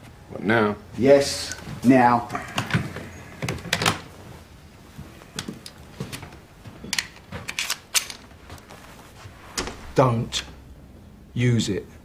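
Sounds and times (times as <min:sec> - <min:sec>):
faint low hum: 0:00.0 - 0:12.0
irregular footsteps: 0:02.6 - 0:10.6
objects being handled clicks: 0:06.9 - 0:08.3.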